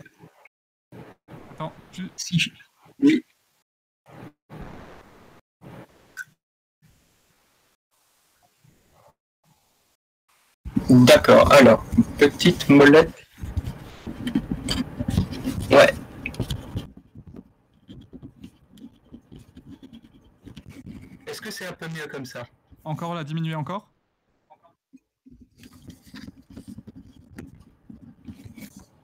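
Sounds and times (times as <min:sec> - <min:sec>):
microphone noise: 0:04.5 - 0:05.8
microphone handling noise: 0:04.5 - 0:06.0, 0:13.4 - 0:21.2.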